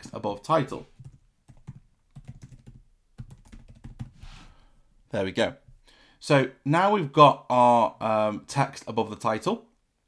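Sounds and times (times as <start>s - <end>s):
computer keyboard typing: 1.0s - 4.2s.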